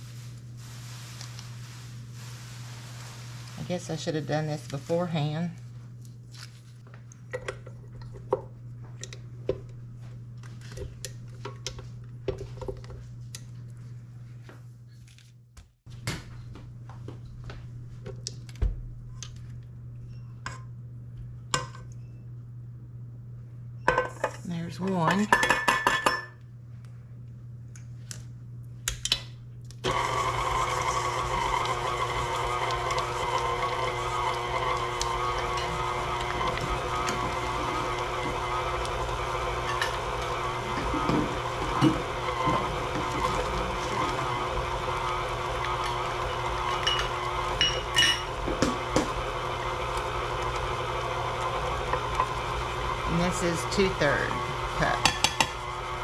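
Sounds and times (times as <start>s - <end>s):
stand mixer running: 29.8s - 56.0s
mixer knocks: 48.4s - 49.2s.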